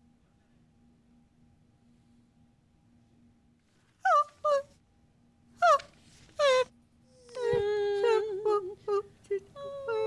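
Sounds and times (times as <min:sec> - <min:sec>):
person making high cries: 0:05.6 - 0:06.7.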